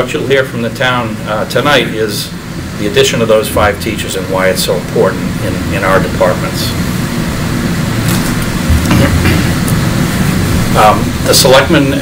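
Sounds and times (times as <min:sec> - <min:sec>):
ventilation system rumble: 0:00.0 - 0:12.0.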